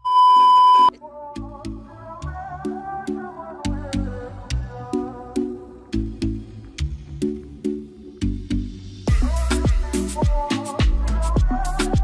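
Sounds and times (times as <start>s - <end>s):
test-pattern beep: 0.0s - 0.9s
music with a beat: 1.4s - 12.0s.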